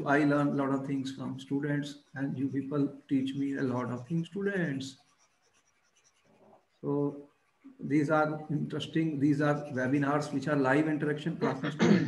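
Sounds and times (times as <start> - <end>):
man speaking: 0.0 - 5.0, 6.8 - 7.2, 7.8 - 12.0
stylus scratching and tapping: 0.0 - 11.8.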